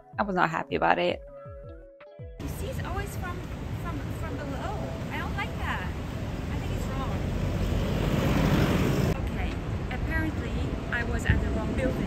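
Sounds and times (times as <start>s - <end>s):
low traffic rumble: 2.4s - 12.0s
vehicle rumble: 2.4s - 12.0s.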